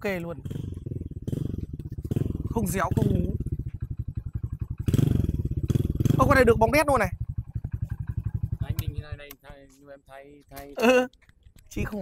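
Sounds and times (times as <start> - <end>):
motorcycle engine idling: 0.0 - 10.7.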